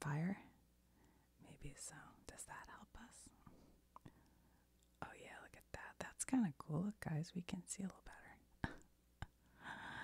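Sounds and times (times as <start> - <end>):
woman whispering: 0.0 - 0.6, 1.4 - 3.4, 5.0 - 8.8.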